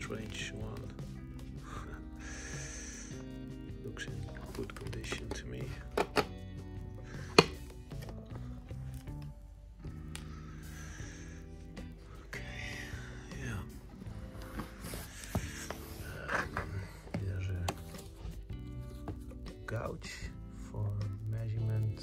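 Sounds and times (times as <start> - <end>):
background music: 0.0 - 22.0
case closing click: 4.4 - 6.4.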